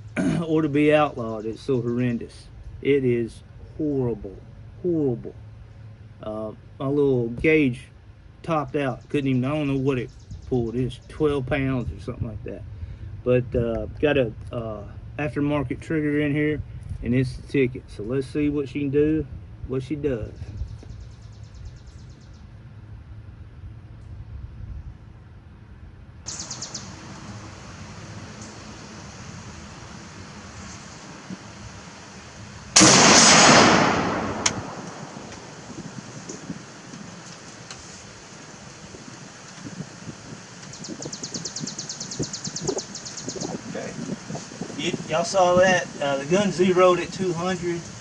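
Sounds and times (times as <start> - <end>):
rifle shot: 32.8 - 36.0.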